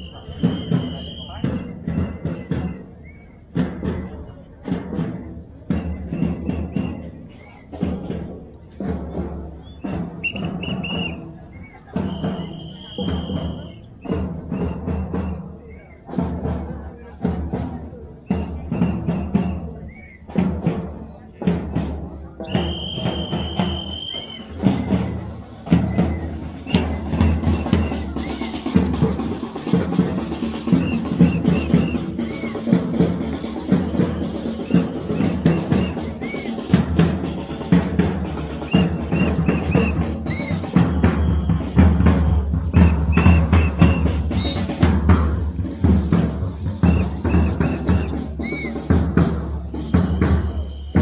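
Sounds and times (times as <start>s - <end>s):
bass and snare drums beating: 0.0s - 51.0s.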